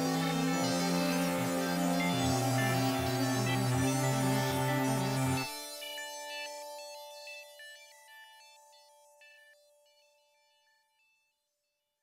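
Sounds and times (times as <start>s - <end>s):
short high synth notes: 0.0s - 5.5s.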